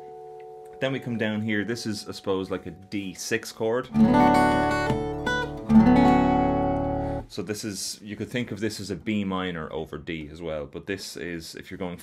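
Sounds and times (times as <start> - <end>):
acoustic guitar chord ringing: 3.9 - 7.3.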